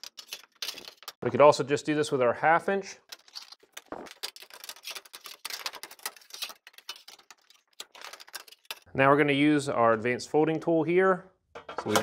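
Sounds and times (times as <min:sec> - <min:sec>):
sheet metal clicking and scraping: 0:03.0 - 0:08.9.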